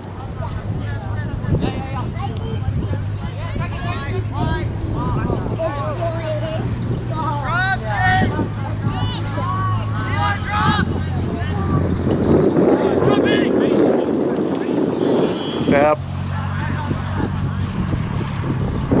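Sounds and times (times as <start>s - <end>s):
distant players shouting: 1.0s - 17.7s.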